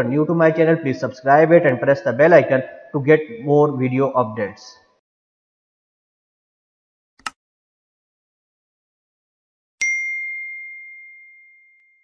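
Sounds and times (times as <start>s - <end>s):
bell-like ding: 9.8s - 12.0s.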